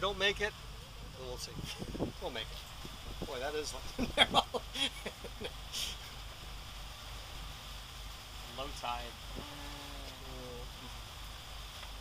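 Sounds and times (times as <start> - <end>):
boat engine rumbling: 0.0 - 12.0
light even hiss: 0.0 - 12.0.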